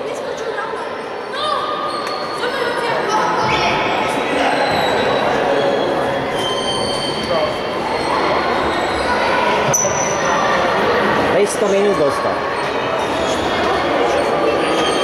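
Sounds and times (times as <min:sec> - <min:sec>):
children calling out: 0:00.0 - 0:05.0, 0:07.8 - 0:15.0.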